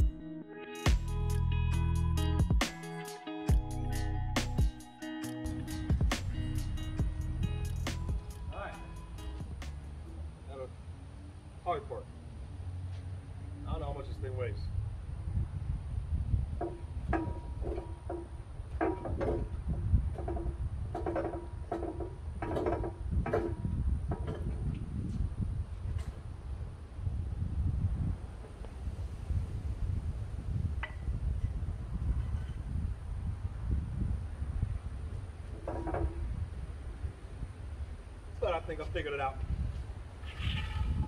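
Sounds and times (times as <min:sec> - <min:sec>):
steady low rumble: 0:05.5 - 0:11.0, 0:13.8 - 0:17.6
steel column creaking and squealing: 0:40.2 - 0:41.0.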